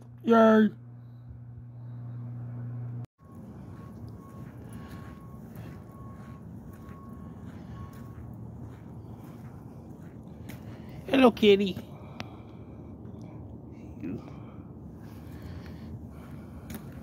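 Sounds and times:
steady low rumble: 0:00.8 - 0:17.0.

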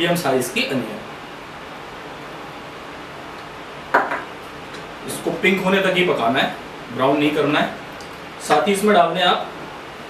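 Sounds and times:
small knock: 0:03.9 - 0:04.3.

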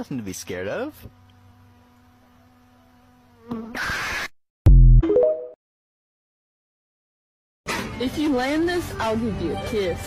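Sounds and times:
faint buzzing bee: 0:00.2 - 0:04.3.

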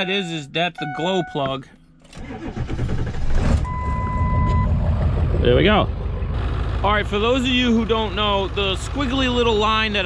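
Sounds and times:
steady electronic beep: 0:00.0 - 0:01.6, 0:03.7 - 0:04.8
diesel engine cranking and running: 0:02.0 - 0:10.0.

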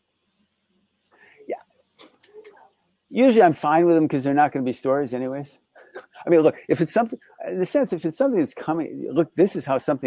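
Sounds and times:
man speaking softly: 0:02.4 - 0:10.0.

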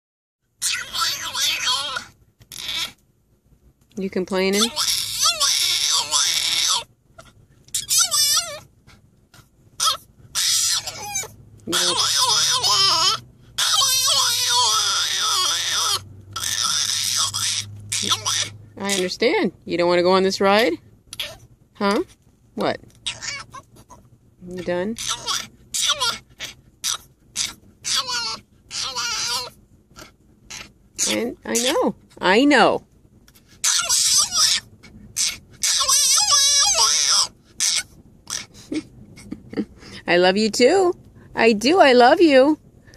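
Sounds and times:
dog crying wails: 0:00.6 - 0:03.0, 0:04.5 - 0:08.7, 0:09.8 - 0:19.2, 0:21.2 - 0:21.4, 0:23.0 - 0:24.0, 0:25.0 - 0:32.4, 0:33.6 - 0:39.6.

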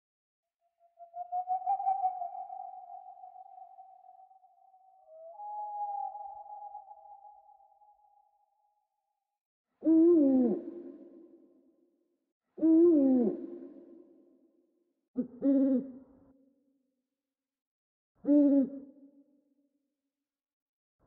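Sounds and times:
owl hooting: 0:00.9 - 0:07.9.

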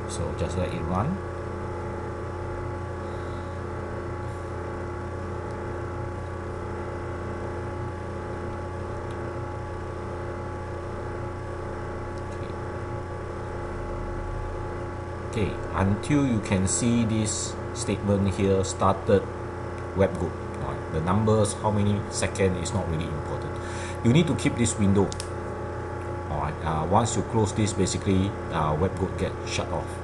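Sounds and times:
steady background hum: 0:00.0 - 0:30.0.

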